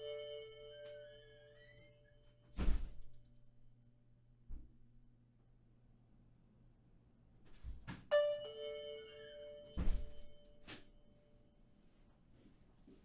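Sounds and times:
two-note doorbell chime: 0.0s - 2.0s, 8.1s - 10.7s.

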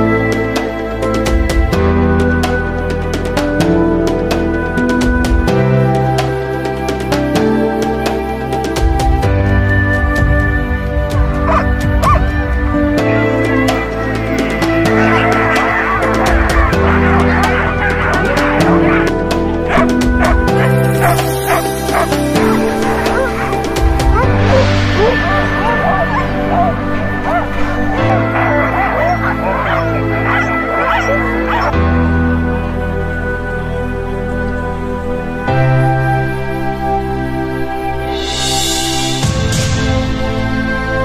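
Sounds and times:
background music: 0.0s - 41.0s
dogs barking and yipping: 11.4s - 12.4s, 13.4s - 31.8s.

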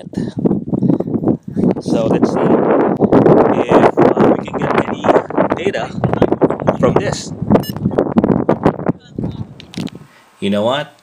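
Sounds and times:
man talking: 1.7s - 2.7s, 3.5s - 7.4s, 10.4s - 11.0s.

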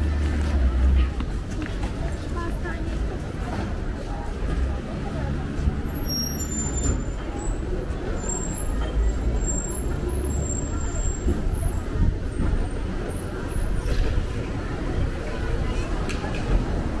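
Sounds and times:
traffic engines rumbling: 0.0s - 17.0s.

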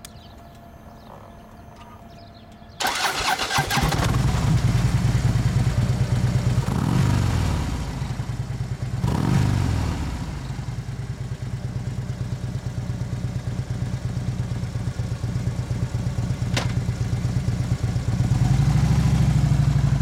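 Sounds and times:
motorcycle engine idling and revving: 0.0s - 20.0s
starter motor cranking: 2.8s - 4.6s.

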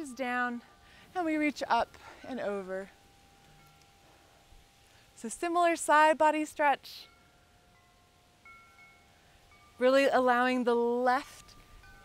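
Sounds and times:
faint chimes ringing: 0.0s - 5.5s.

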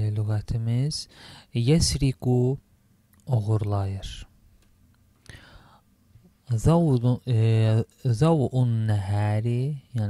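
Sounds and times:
person speaking: 0.0s - 2.6s, 3.2s - 4.4s, 6.4s - 10.0s.

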